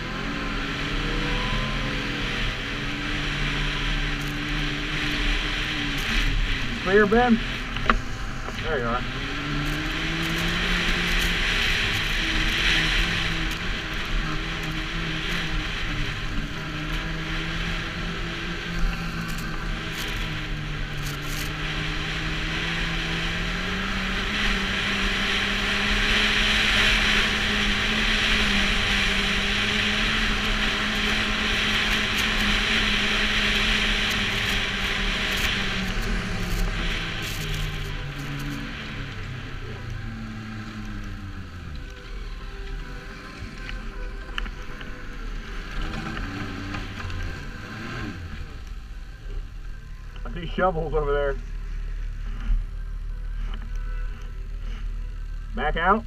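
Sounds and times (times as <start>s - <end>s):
snowmobile engine running: 0.0s - 56.0s
steady rushing hiss: 2.2s - 56.0s.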